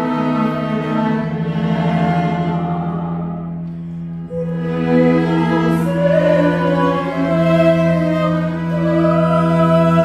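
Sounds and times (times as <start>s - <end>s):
cello bowing sustained notes: 0.0s - 10.0s
soprano singing: 4.3s - 10.0s.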